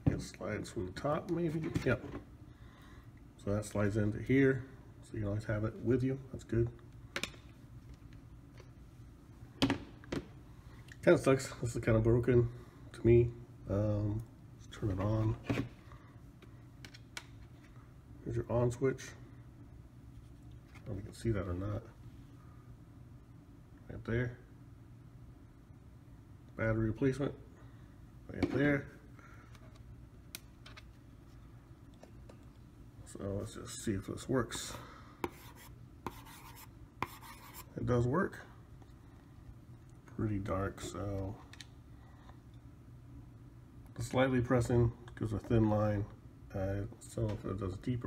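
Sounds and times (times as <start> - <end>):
low room hum: 0.0 - 48.0.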